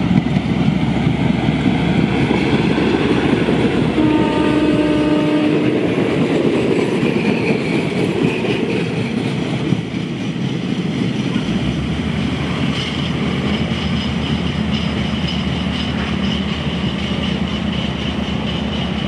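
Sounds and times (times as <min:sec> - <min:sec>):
diesel train engine running: 0:00.0 - 0:19.0
wheels rumbling on rails: 0:00.0 - 0:19.0
train horn: 0:03.8 - 0:06.0.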